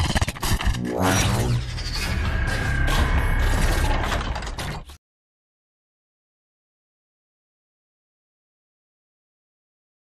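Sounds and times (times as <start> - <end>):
mechanical whirring and clicking: 0.0 - 5.0.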